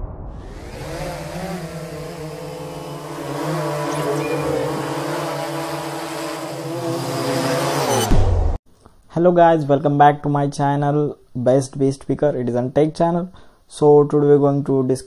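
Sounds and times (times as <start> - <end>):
drone propellers humming: 0.0 - 8.2.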